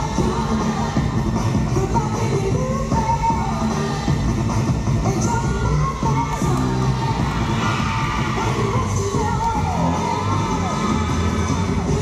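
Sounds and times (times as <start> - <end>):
crowd cheering and shouting: 0.0 - 1.7, 5.2 - 12.0
dance music: 0.0 - 12.0.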